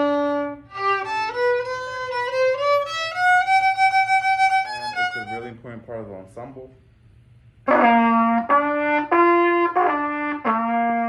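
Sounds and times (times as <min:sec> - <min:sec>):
solo violin bowed: 0:00.0 - 0:05.5.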